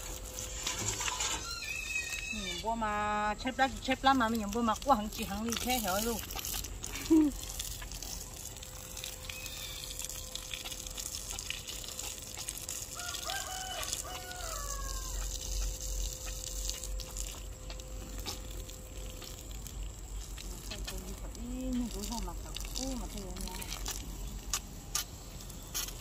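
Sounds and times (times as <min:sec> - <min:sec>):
hose water splashing on soil: 0:00.0 - 0:26.0
rooster crowing: 0:12.9 - 0:15.4.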